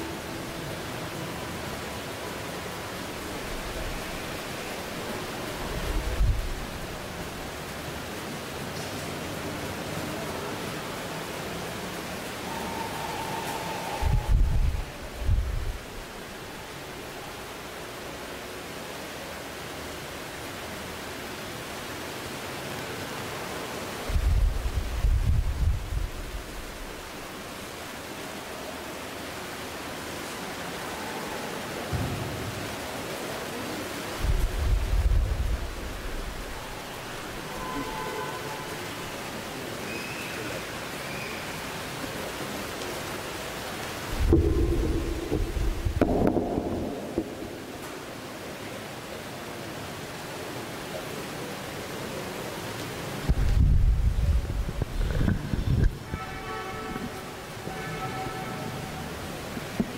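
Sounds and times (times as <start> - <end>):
microphone hiss: 0.0 - 59.9
low rumbles: 44.1 - 48.1.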